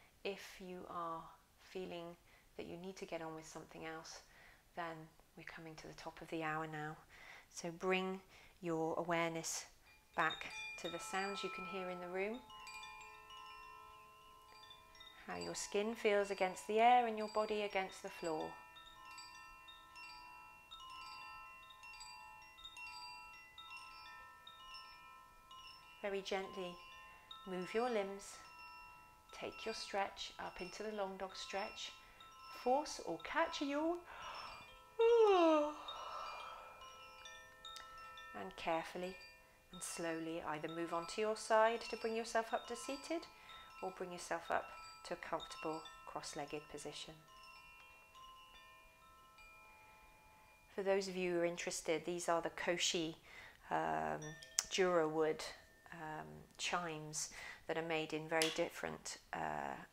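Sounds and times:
wind chime ringing: 9.1s - 51.5s, 53.0s - 56.4s.

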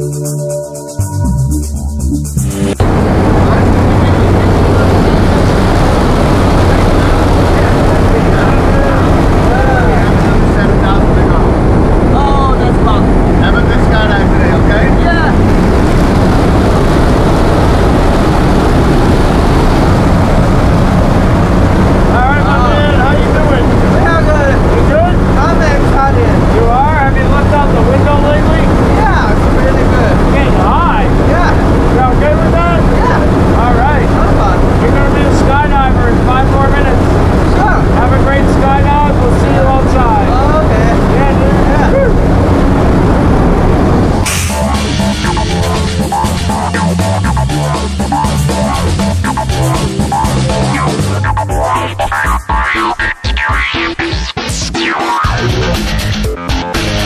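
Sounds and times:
propeller plane engine drone: 2.6s - 52.7s
people talking: 2.8s - 21.1s, 21.9s - 43.4s, 44.0s - 53.5s, 55.2s - 57.0s.

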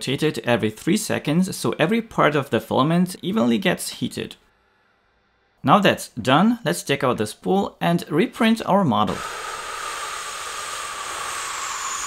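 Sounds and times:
mid-pitched whine: 9.0s - 12.0s
printer hiss: 9.0s - 12.0s.

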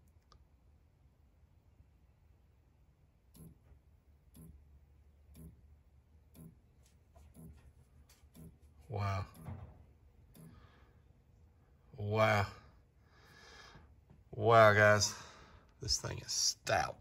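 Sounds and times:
low hum: 0.0s - 17.0s.

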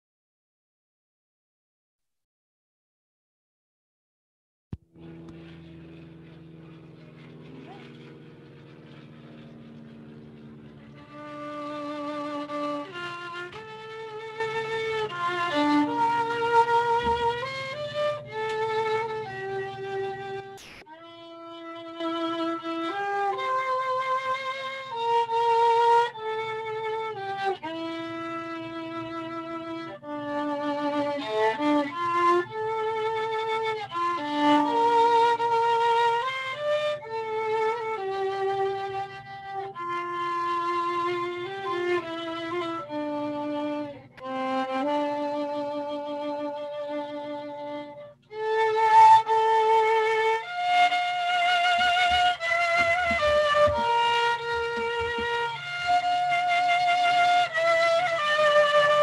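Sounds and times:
solo violin slow melody: 4.9s - 59.0s.

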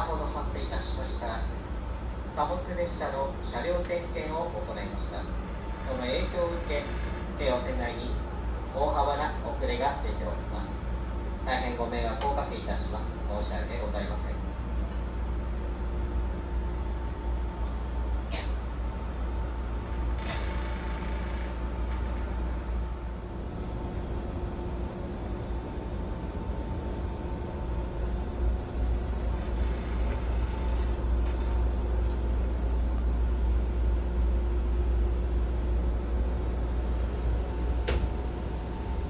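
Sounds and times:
low drone inside train car: 0.0s - 39.0s.

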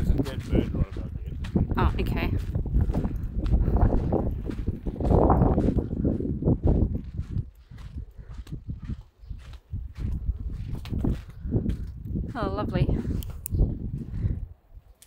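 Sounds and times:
footsteps on dirt and gravel: 0.0s - 14.5s
wind buffeting microphone: 0.0s - 15.0s.

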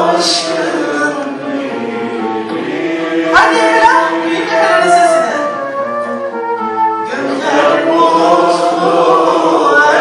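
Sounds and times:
flute: 4.4s - 9.2s.

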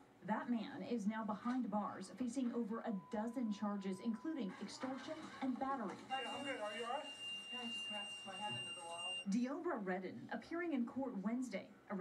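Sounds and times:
steady high-pitched tone: 6.1s - 9.3s.

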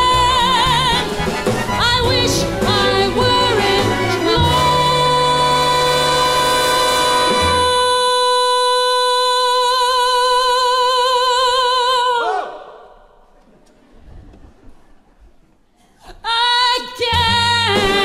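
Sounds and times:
woman singing long high note: 1.8s - 12.6s.

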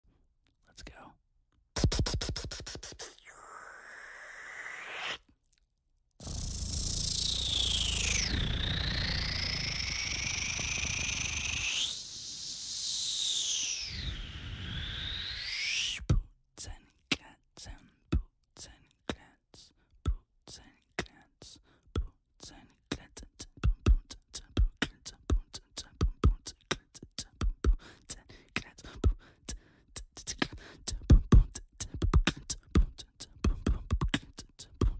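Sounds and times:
breathy whisper-like mouth sound: 0.6s - 1.2s, 1.8s - 4.3s
beatbox kick sounds: 1.8s - 4.0s, 6.2s - 12.0s, 16.0s - 34.9s
fast roll of bass beats: 6.2s - 11.6s, 30.3s - 34.9s.

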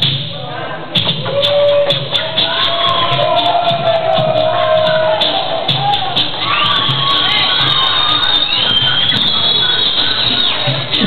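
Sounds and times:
dance music with bass beat: 0.0s - 11.0s
crowd cheering and shouting: 1.0s - 11.0s.

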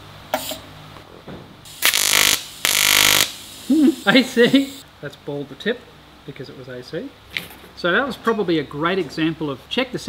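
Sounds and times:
welding arc buzzing: 1.7s - 4.8s.

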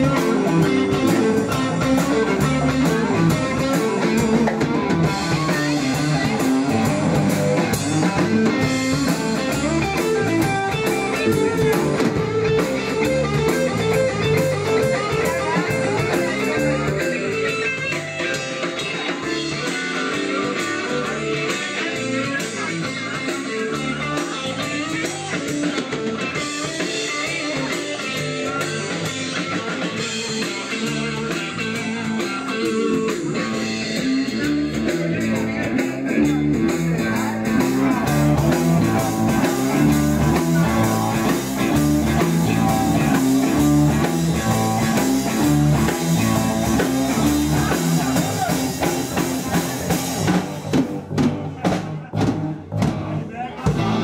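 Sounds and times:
drum kit: 0.0s - 54.0s
electric guitar: 0.0s - 54.0s.

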